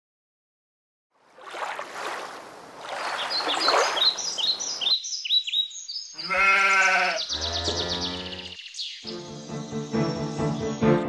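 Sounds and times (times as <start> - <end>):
small birds chirping: 2.9 - 11.0
sheep bleating: 6.2 - 8.6.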